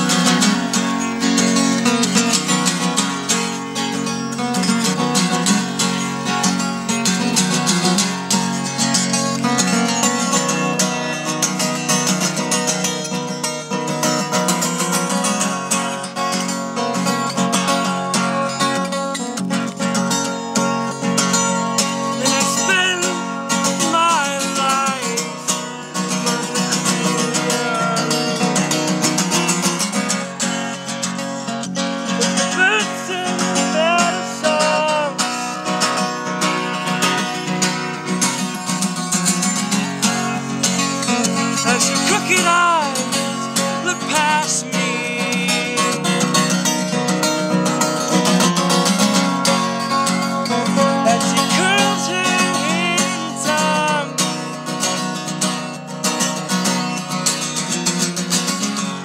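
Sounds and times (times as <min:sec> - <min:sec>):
acoustic guitar strumming: 0:00.0 - 0:59.0.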